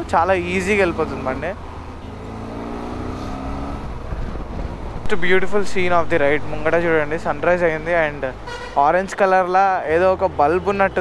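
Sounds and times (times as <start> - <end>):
motorcycle engine accelerating: 0.8 - 5.1.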